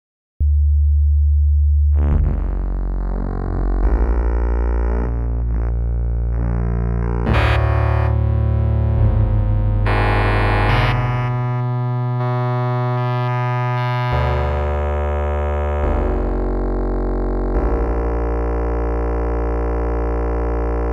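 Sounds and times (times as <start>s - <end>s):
synthesizer playing sustained notes: 3.1s - 20.9s.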